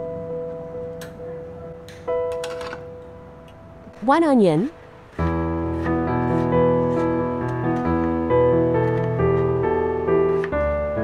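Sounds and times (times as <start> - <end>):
piano music: 0.0 - 11.0.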